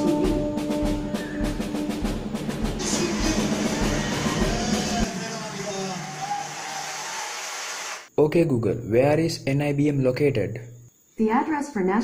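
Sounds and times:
television noise: 2.8 - 8.1.

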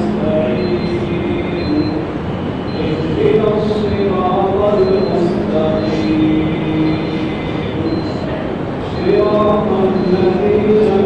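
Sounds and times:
man chanting: 0.0 - 2.2, 2.8 - 11.0
murmur of crowd: 0.0 - 11.0.

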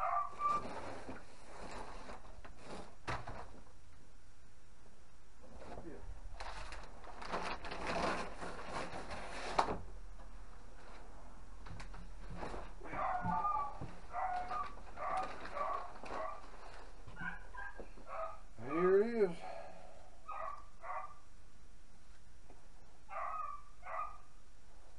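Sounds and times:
dogs barking: 0.0 - 0.6, 12.9 - 16.5, 17.2 - 18.5, 20.2 - 21.2, 23.1 - 24.3
cardboard packaging rustling: 0.0 - 3.6, 6.3 - 9.9, 11.7 - 17.4.

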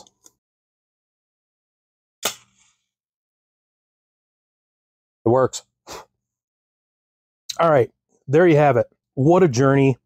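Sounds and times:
match striking and flaring: 2.2 - 2.8.

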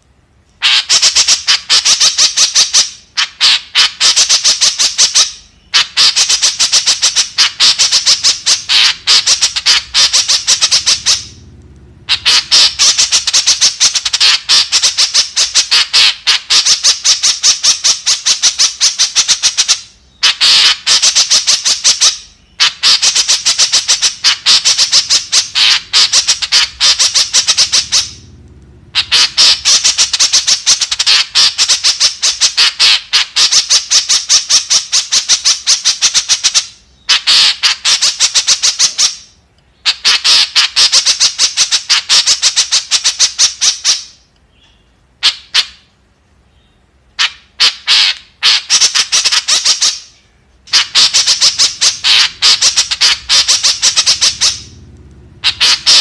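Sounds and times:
bird calling rapid high notes: 0.6 - 11.4, 12.0 - 44.1, 47.2 - 56.0.

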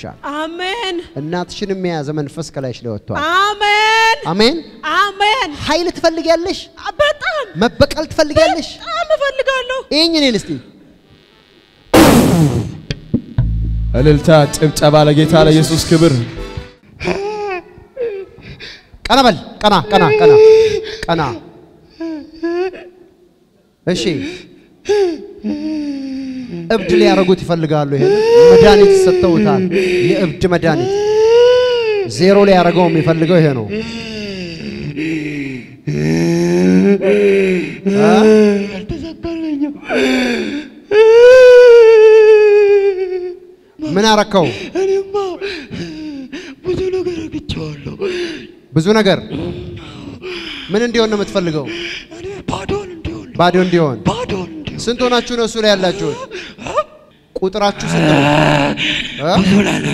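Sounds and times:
loud cymbal-like crash: 11.9 - 14.5
low held bass note: 12.0 - 15.1
man wailing into microphone: 19.9 - 20.9, 24.9 - 32.3, 35.9 - 43.4, 57.8 - 59.9.

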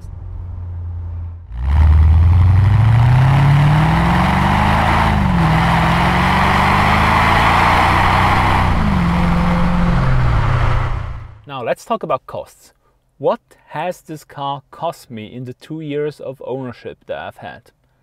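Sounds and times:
car engine accelerating: 0.0 - 11.4.

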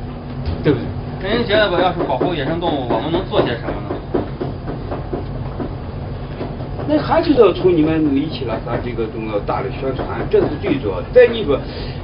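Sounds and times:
kitchen equipment rumble: 0.0 - 12.0.

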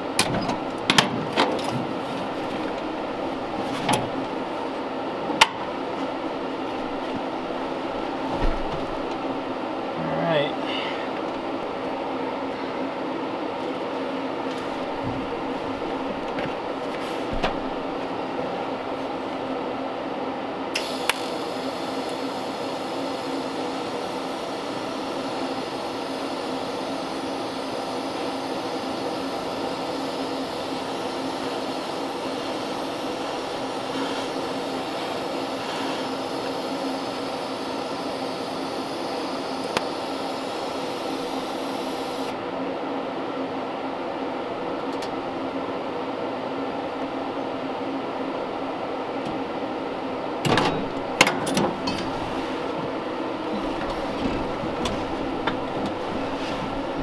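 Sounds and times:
welder arc buzzing: 20.7 - 42.4.

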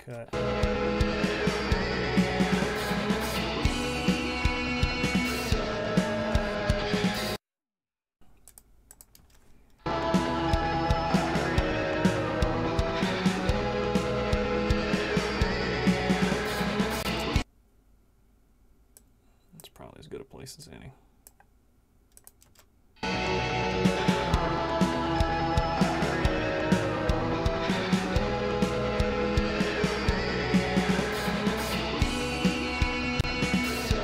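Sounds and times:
drums over guitar backing track: 0.1 - 7.3, 9.9 - 17.4, 23.0 - 34.0
computer keyboard clicks: 8.3 - 9.6, 22.1 - 22.7.

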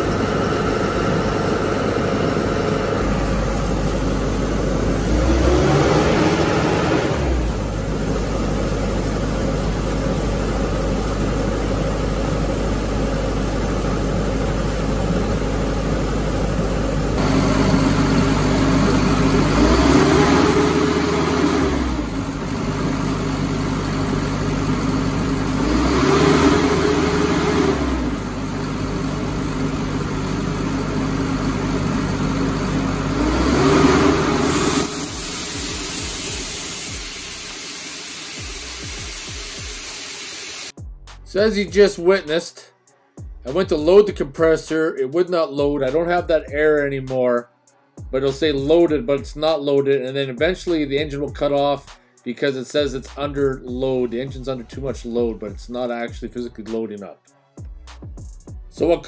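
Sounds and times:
engine revving up: 0.0 - 9.1, 17.2 - 37.7
diesel engine running: 0.0 - 40.0.

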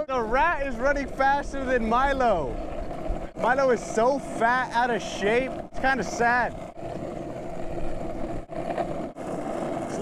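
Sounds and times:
hard wheels rolling on asphalt: 0.0 - 10.0.

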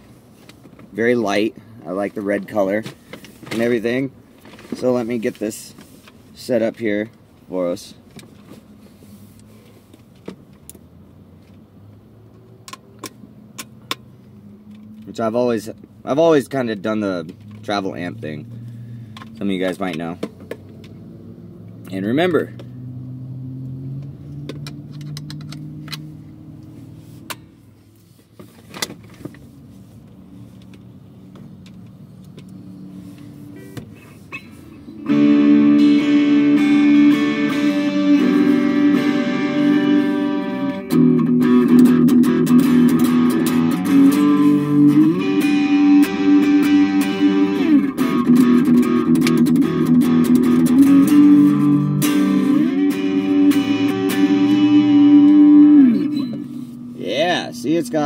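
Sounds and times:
electric guitar chords: 34.8 - 58.0
amplifier hum: 34.9 - 58.0.

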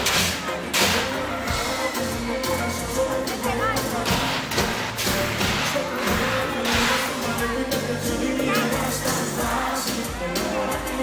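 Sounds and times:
crowd noise: 0.0 - 11.0
live pop band music: 0.0 - 11.0.

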